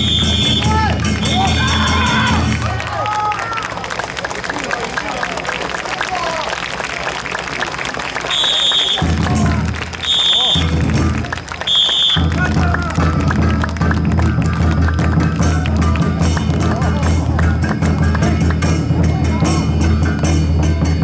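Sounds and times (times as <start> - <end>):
whistle blasts: 0.0 - 2.4, 8.2 - 9.3, 9.9 - 10.9, 11.5 - 12.5
music with heavy bass beat: 0.0 - 2.7, 12.2 - 21.0.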